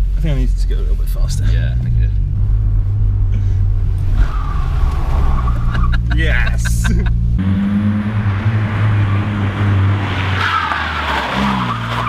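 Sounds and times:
car engine and road drone: 0.0 - 12.0.

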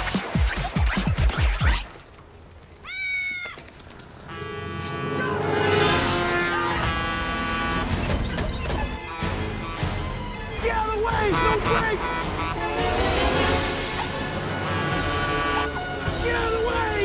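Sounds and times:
layered film-score music: 4.4 - 17.0.

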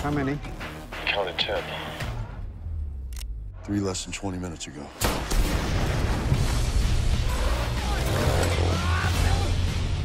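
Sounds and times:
dramatic music with deep bass: 0.0 - 3.7, 4.9 - 10.0.

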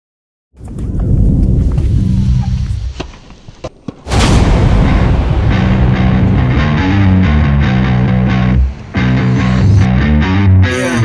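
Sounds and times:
deep rumble: 0.6 - 3.0, 4.1 - 10.4
music: 4.9 - 11.0.

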